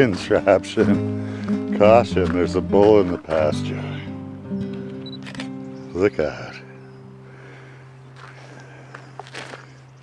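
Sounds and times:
footsteps walking: 0.0 - 3.5, 8.1 - 9.8.

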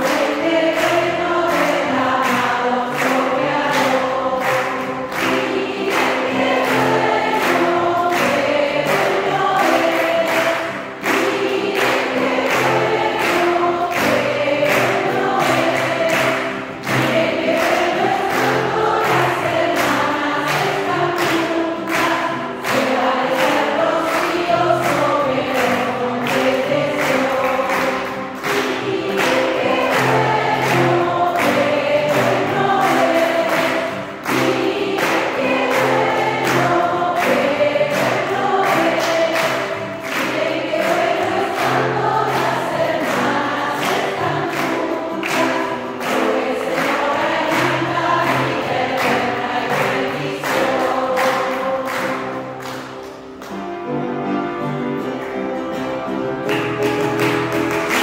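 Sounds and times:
women singing a worship song: 0.0 - 52.8.

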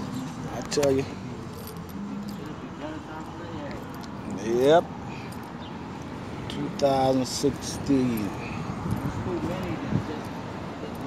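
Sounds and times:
light metallic jingling: 0.0 - 11.0.

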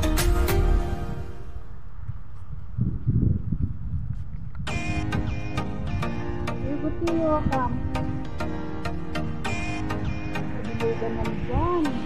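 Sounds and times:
background music: 0.0 - 1.9, 4.7 - 12.0.

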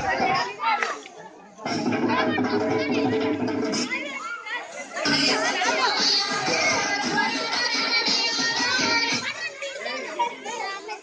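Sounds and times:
children talking and calling: 0.0 - 11.0.

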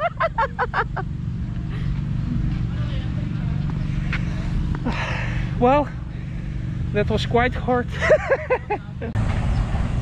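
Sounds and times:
person laughing: 0.0 - 1.1, 7.9 - 9.2
low outdoor rumble: 0.0 - 10.0.

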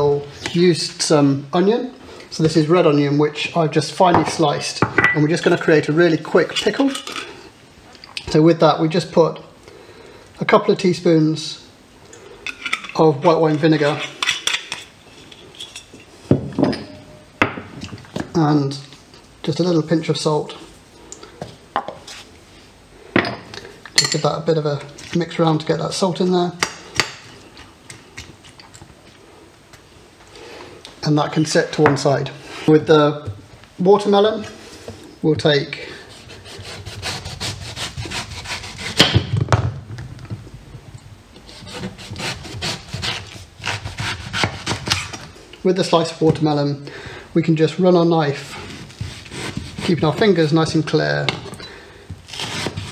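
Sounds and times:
knife slicing watermelon: 41.6 - 45.2.

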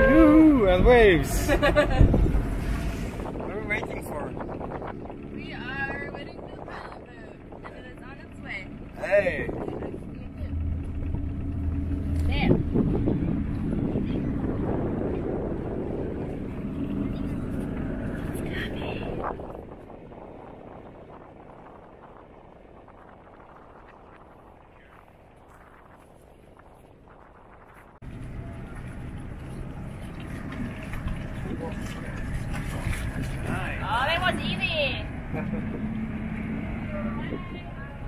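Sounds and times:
boat engine running: 0.0 - 38.0
water noise: 0.0 - 38.0
wind: 0.0 - 38.0.

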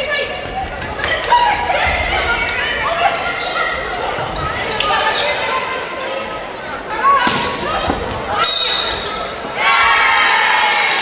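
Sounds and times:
voices echoing in gym hall: 0.0 - 11.0
volleyball hits: 7.2 - 8.4.

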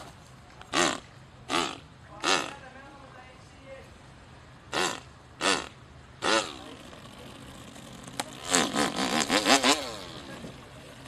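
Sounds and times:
man imitating chainsaw: 0.7 - 2.6, 4.7 - 7.3, 8.3 - 10.5.

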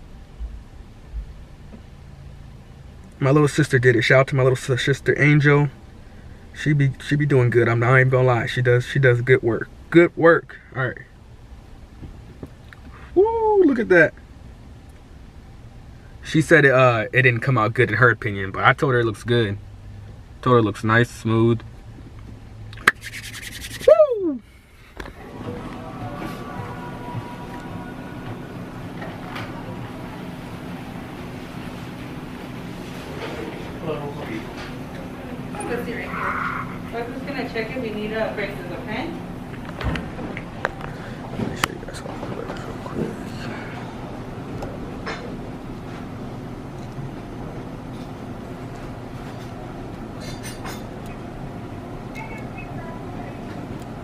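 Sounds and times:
man exclaiming woo: 13.2 - 13.9, 23.7 - 24.4
hands rubbing together: 22.8 - 24.0
steady low rumble: 36.7 - 50.1.

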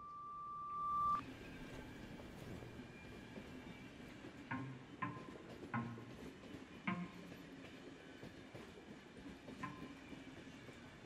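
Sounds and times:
subway car rumbling on rails: 1.2 - 11.0.

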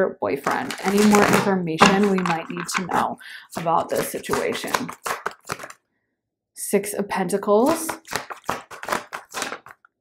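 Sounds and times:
cards being shuffled: 0.6 - 3.0, 3.8 - 5.8, 7.8 - 9.9.

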